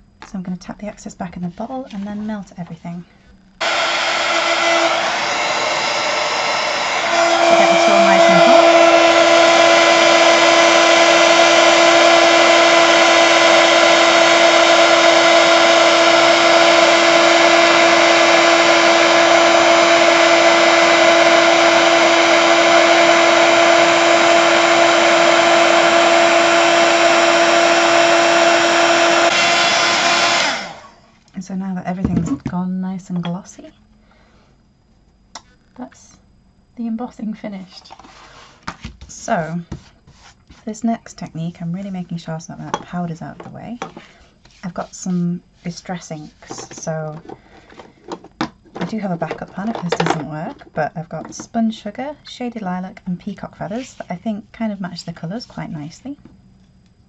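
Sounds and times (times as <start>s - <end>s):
heat gun blowing: 3.6s - 31.0s
steady hum: 29.9s - 57.0s.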